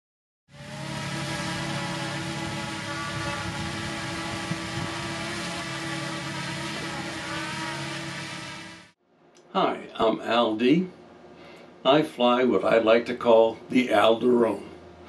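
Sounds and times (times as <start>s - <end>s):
drone propellers buzzing: 0.5s - 9.0s.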